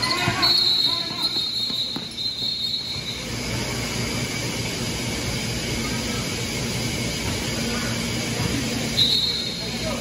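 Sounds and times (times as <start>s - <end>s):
mechanical rumble with low hum: 2.2s - 10.0s.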